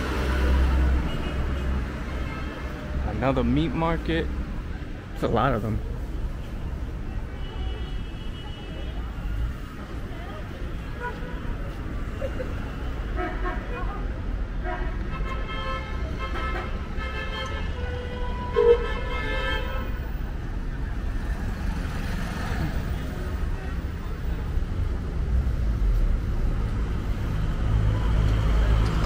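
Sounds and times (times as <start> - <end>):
street traffic rumble: 0.0 - 29.0.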